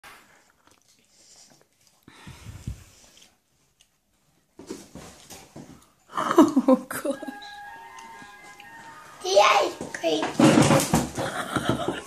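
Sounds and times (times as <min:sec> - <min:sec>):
child chewing: 0:00.0 - 0:06.6.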